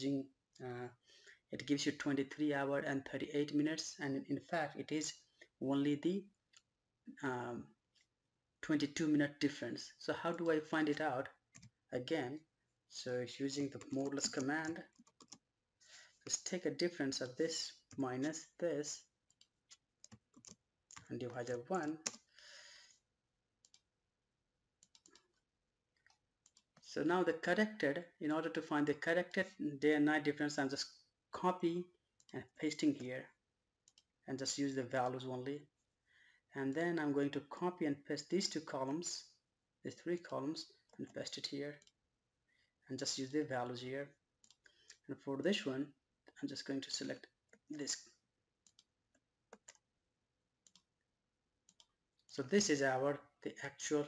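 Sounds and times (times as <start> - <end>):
computer mouse clicks: 13.8 - 15.4, 19.3 - 21.0, 23.6 - 23.8, 24.8 - 25.3, 33.9 - 34.1, 44.4 - 45.0, 48.6 - 48.9, 49.5 - 49.8, 50.6 - 50.9, 51.7 - 52.0.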